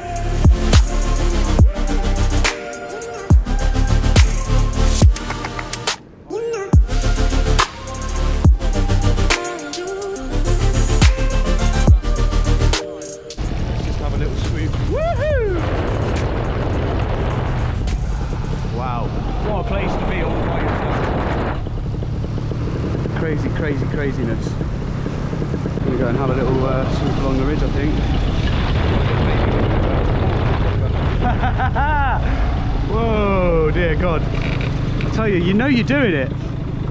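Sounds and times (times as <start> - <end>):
sweeping pitch sounds: 0.0 - 20.6
wind rushing over microphone: 13.4 - 35.0
paramotor engine and propeller: 13.4 - 36.9.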